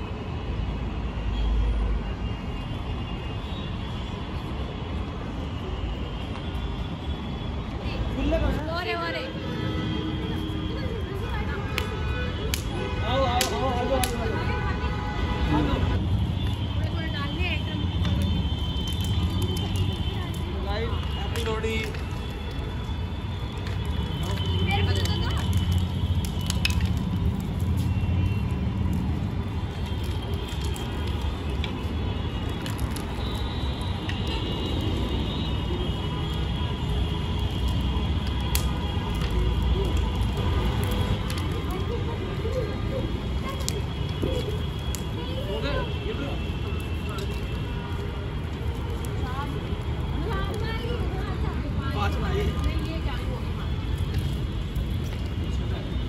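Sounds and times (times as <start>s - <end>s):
bonfire crackling: 1.6s - 56.0s
low fire rumble: 4.2s - 56.0s
fire pops and snaps: 11.3s - 14.5s, 16.0s - 56.0s.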